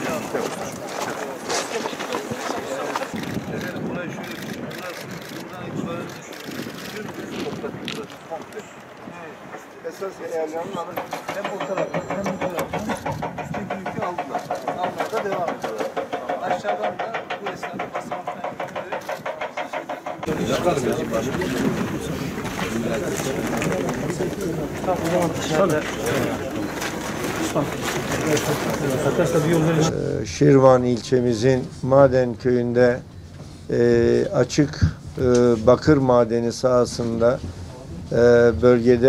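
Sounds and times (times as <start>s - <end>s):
chatter of people talking: 0.0s - 39.0s.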